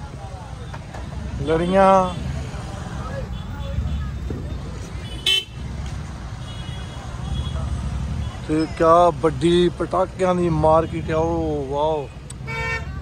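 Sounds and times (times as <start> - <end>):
faint crowd voices: 0.0 - 13.0
slow street traffic rumble: 0.0 - 13.0
car horn beep: 3.2 - 5.8, 6.4 - 8.4, 12.4 - 13.0.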